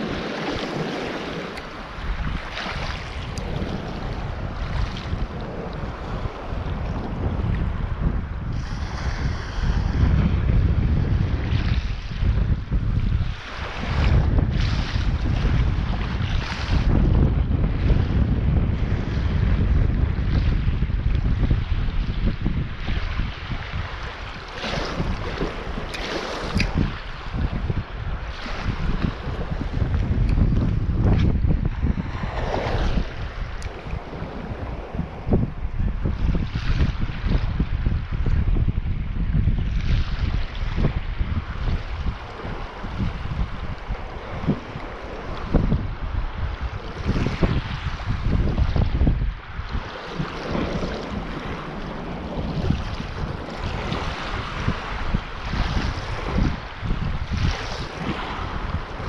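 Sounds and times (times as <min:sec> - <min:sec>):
waves washing on rocky shore: 0:00.0 - 0:38.6, 0:39.8 - 0:59.0
wind rumbling on microphone: 0:00.0 - 0:59.0.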